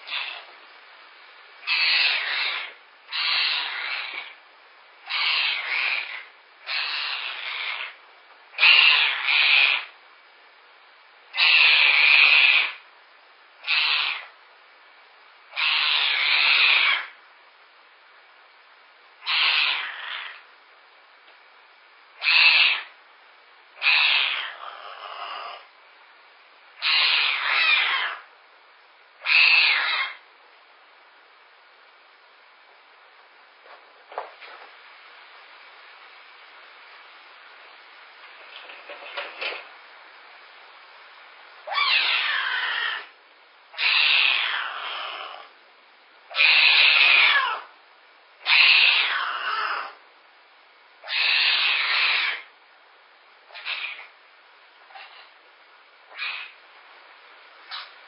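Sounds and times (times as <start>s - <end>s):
young animal's raspy calls: 0.0s - 0.5s, 1.6s - 4.4s, 5.0s - 10.0s, 11.3s - 12.8s, 13.6s - 14.4s, 15.5s - 17.2s, 19.2s - 20.5s, 22.2s - 23.0s, 23.8s - 25.7s, 26.8s - 28.3s, 29.2s - 30.2s, 41.6s - 45.6s, 46.3s - 47.7s, 48.4s - 50.0s, 51.0s - 52.5s, 53.5s - 54.2s, 56.1s - 56.6s.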